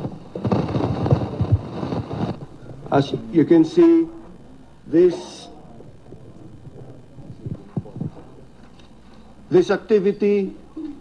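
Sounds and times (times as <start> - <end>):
microphone handling rumble: 0.0 - 3.0, 5.8 - 8.7.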